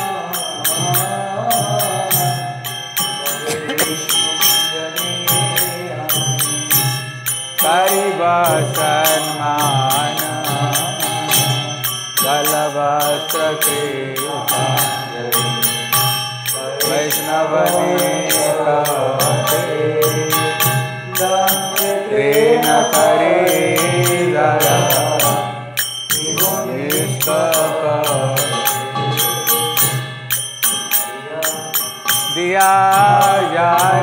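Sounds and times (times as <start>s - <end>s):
person singing a chant: 0.0s - 6.9s, 7.6s - 15.9s, 16.5s - 25.6s, 26.2s - 30.0s, 30.7s - 34.0s
hand cymbals striking a beat: 0.0s - 34.0s.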